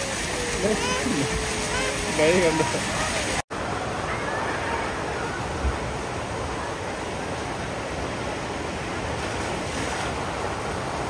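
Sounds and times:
water gushing into pool: 0:00.0 - 0:11.0.

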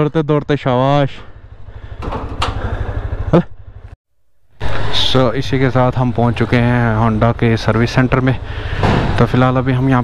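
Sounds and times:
motorcycle engine running: 0:01.2 - 0:04.0, 0:04.6 - 0:10.0.

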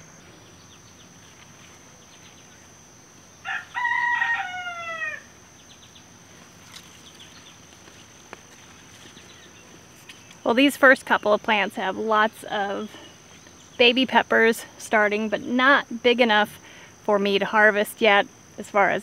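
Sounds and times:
rooster crowing: 0:03.4 - 0:05.4.

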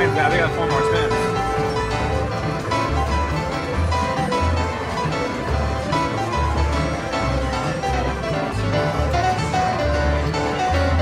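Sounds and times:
slot machine music with bass: 0:00.0 - 0:11.0.

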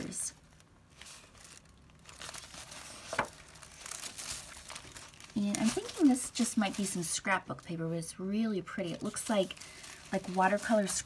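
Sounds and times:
page crackle: 0:00.4 - 0:07.7, 0:08.9 - 0:11.0
paper pages rustling: 0:00.5 - 0:07.0, 0:09.0 - 0:11.0.

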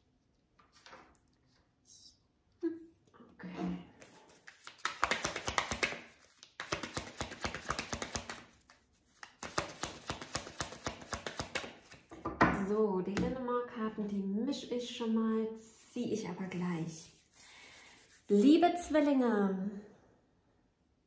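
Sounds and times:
cards being shuffled: 0:04.0 - 0:12.1.

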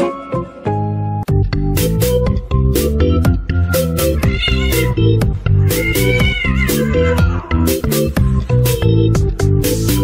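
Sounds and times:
music with steady beat: 0:01.2 - 0:10.0
cat meowing: 0:04.2 - 0:07.6.

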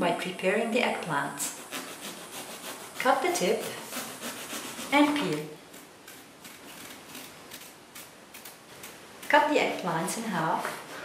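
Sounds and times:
knife slicing eggplant skin: 0:01.5 - 0:11.0.

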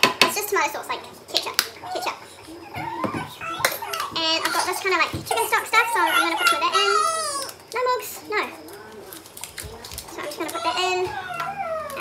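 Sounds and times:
young child talking: 0:00.3 - 0:12.0.

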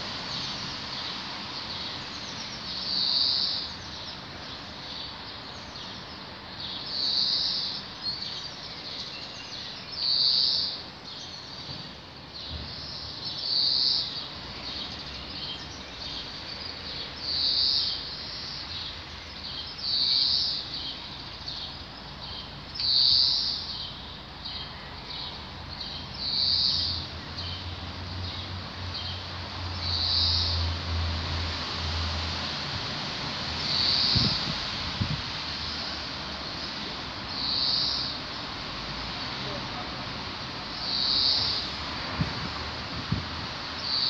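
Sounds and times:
background hiss: 0:00.0 - 0:44.0.

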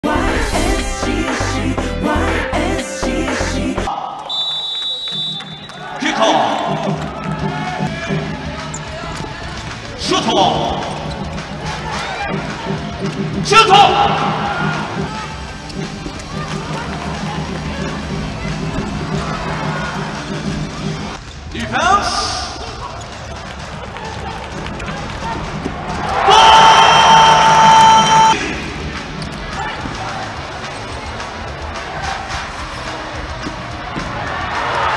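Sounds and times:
crowd: 0:00.0 - 0:34.9
referee's whistle: 0:04.2 - 0:05.9.

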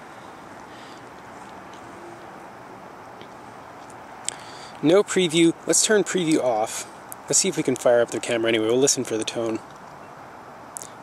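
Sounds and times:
residential street background noise: 0:00.0 - 0:11.0.

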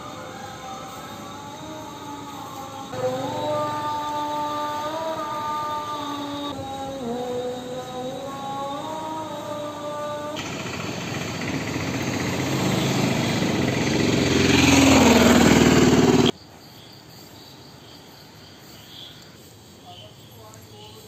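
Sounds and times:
vehicle passing close: 0:00.0 - 0:16.4
crickets chirping: 0:00.0 - 0:21.0.

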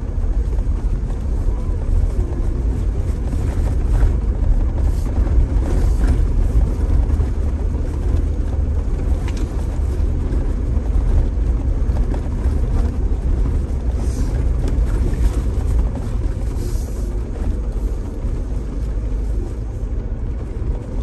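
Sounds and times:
engine and tyres on gravel: 0:00.0 - 0:21.0.

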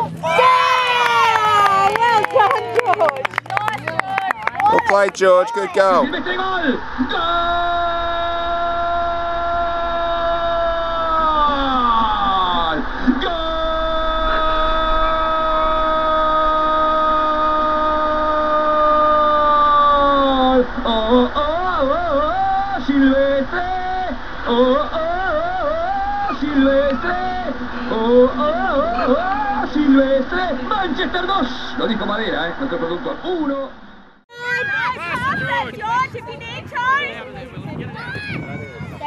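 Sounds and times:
man singing long notes: 0:06.0 - 0:32.0.

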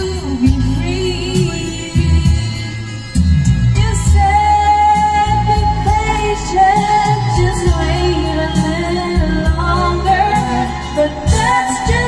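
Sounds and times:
pop backing track: 0:00.0 - 0:12.0
woman singing karaoke: 0:00.0 - 0:12.0.

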